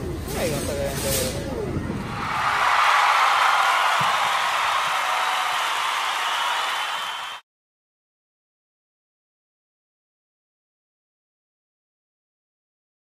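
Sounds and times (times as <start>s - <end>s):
store background noise: 0.0s - 2.2s.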